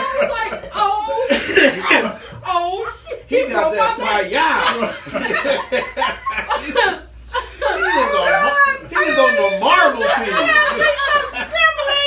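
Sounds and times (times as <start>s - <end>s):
group of adults laughing: 0.0s - 3.2s, 4.3s - 12.0s.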